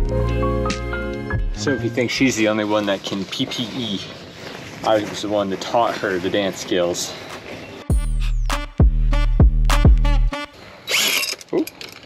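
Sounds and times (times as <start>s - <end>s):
music with heavy bass: 0.0s - 1.7s, 7.9s - 10.5s.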